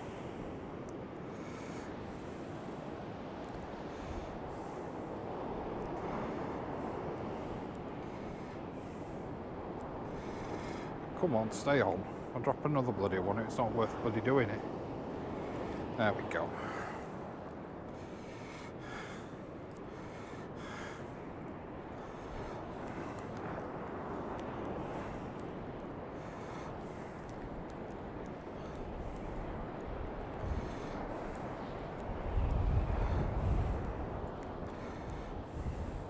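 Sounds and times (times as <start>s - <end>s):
surf breaking on sand beach: 0.0s - 36.0s
wind rumbling on microphone: 0.0s - 36.0s.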